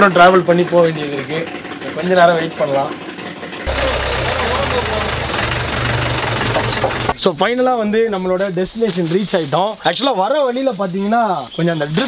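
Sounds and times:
jeep engine idling: 0:03.7 - 0:07.2.

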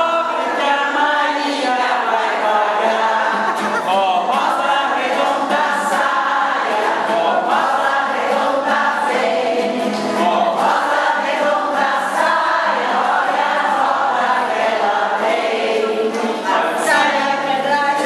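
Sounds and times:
women singing in chorus: 0:00.0 - 0:18.0.

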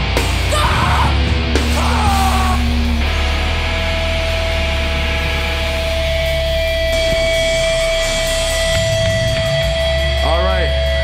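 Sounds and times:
guitar feedback tone: 0:00.0 - 0:10.9.

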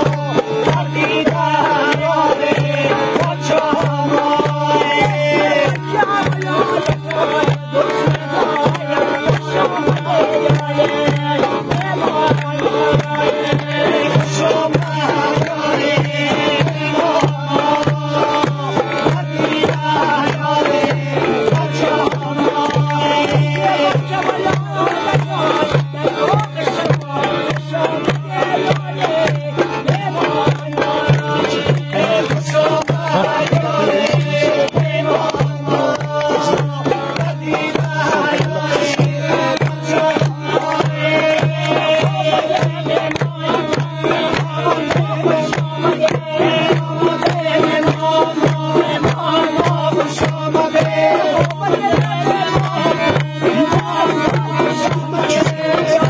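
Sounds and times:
hand drum beat: 0:00.0 - 0:56.0.

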